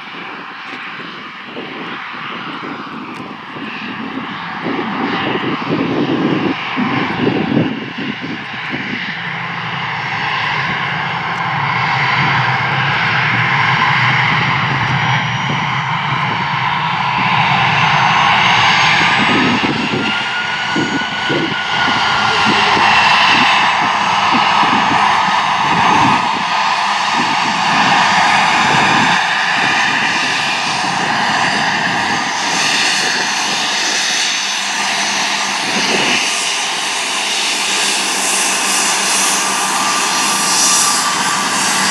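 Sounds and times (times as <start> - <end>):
jet engine whine: 0.0 - 41.9.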